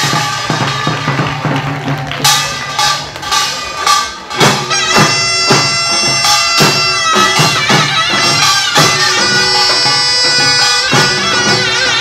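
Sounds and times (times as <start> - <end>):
hourglass drums beating: 0.0 - 12.0
reedy shawm melody: 0.0 - 12.0.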